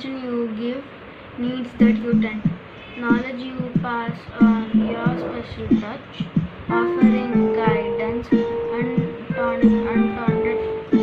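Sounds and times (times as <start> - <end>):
child singing: 1.4 - 11.0
plucked-string accompaniment: 6.7 - 11.0.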